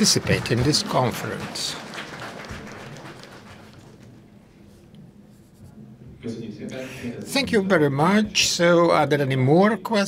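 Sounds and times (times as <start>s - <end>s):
faint rustling and shuffling: 3.8s - 6.2s.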